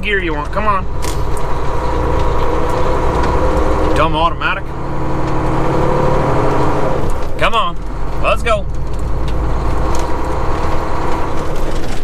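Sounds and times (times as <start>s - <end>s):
diesel truck engine rumble: 0.0s - 12.0s.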